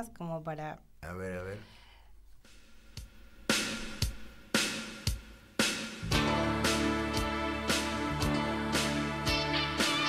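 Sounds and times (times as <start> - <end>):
heavy drum beats: 2.4 - 10.0.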